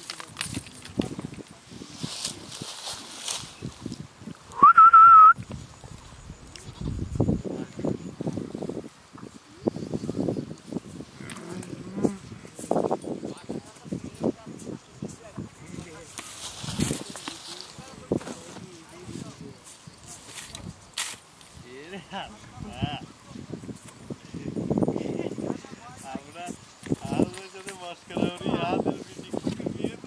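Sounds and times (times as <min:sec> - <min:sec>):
people talking: 0:00.0 - 0:03.2, 0:06.6 - 0:08.1, 0:11.3 - 0:20.7, 0:21.6 - 0:30.0
cow mooing: 0:11.2 - 0:12.5.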